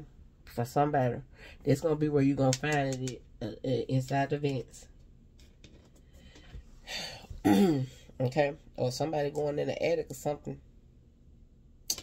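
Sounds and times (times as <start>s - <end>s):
woman clearing her throat: 7.4s - 8.0s.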